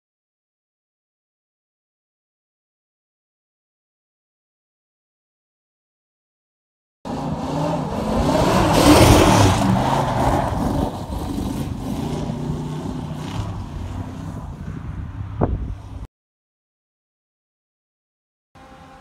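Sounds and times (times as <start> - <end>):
car engine revving hard: 7.1 - 14.2.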